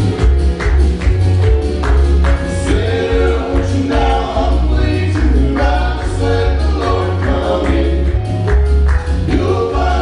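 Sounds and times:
pulsing bass: 0:00.0 - 0:10.0
male vocal group singing in harmony: 0:02.4 - 0:10.0.

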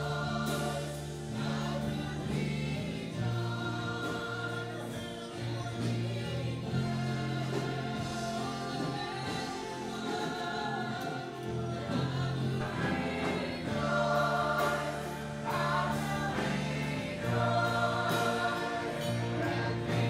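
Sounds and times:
church band with guitars: 0:00.0 - 0:20.0
group of voices singing: 0:00.0 - 0:20.0.

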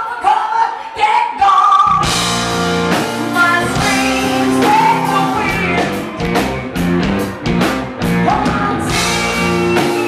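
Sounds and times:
woman singing: 0:00.0 - 0:02.1, 0:03.2 - 0:06.2, 0:08.0 - 0:10.0
live rock band playing: 0:01.8 - 0:10.0.

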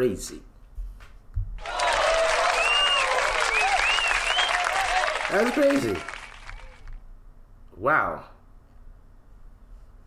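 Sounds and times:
crowd applause and cheering: 0:01.6 - 0:07.0.

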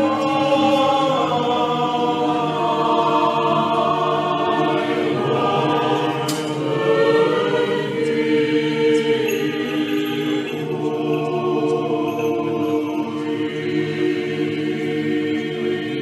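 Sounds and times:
choir chanting: 0:00.0 - 0:16.0.

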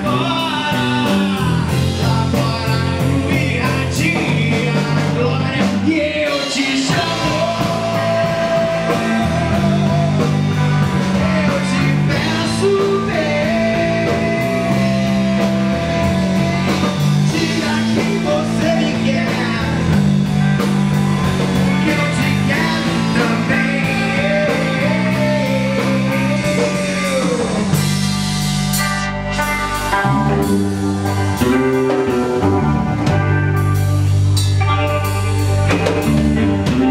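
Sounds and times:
instrumental rock band playing: 0:00.0 - 0:36.9.

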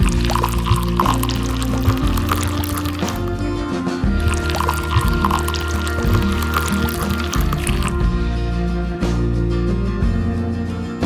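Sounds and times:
wet cement pouring: 0:00.0 - 0:03.4, 0:04.2 - 0:08.0
background music: 0:00.0 - 0:11.0.

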